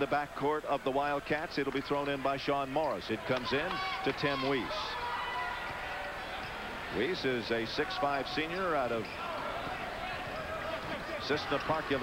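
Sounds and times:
arena noise: 0:00.0 - 0:12.0.

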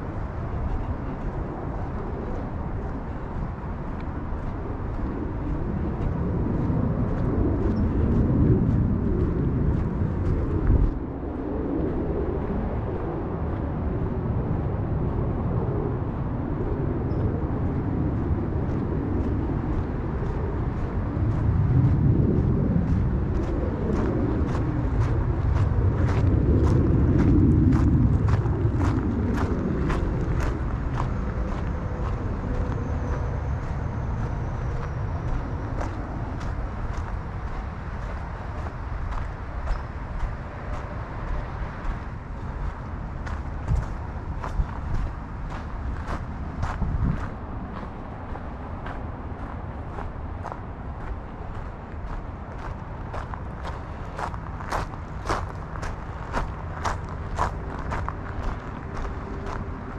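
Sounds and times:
road traffic rumble: 0:00.0 - 0:59.9
footsteps crunching on trail: 0:20.2 - 0:59.9.

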